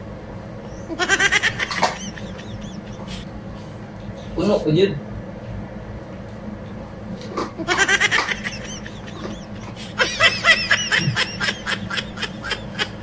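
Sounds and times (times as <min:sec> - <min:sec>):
person giggling: 0:00.8 - 0:03.3, 0:07.6 - 0:13.0.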